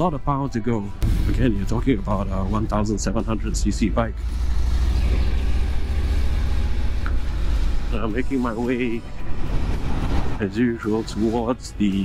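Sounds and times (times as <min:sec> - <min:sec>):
road and wind noise: 0:00.0 - 0:12.0
motorcycle engine running: 0:02.2 - 0:10.4.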